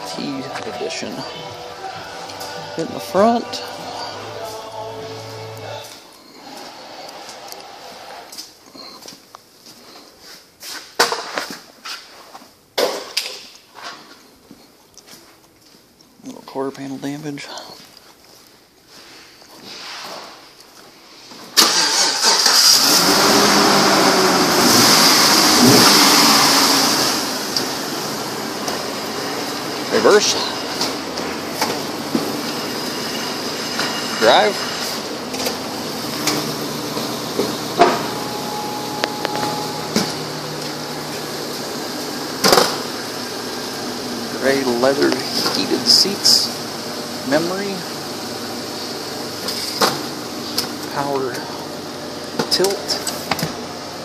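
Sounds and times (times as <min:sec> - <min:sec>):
car engine starting and idling: 0:00.0 - 0:08.5, 0:21.5 - 0:54.0.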